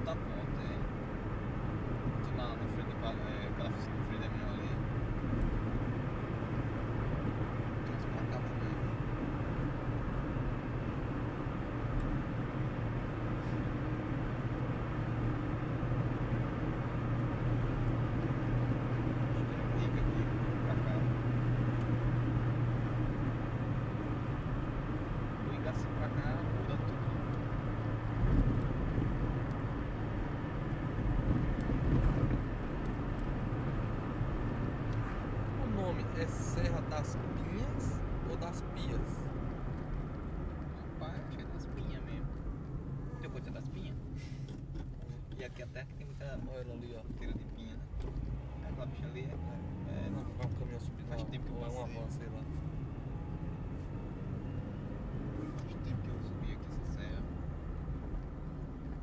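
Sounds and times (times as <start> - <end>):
car engine drone: 0.0 - 59.0
road and tyre noise: 0.0 - 59.0.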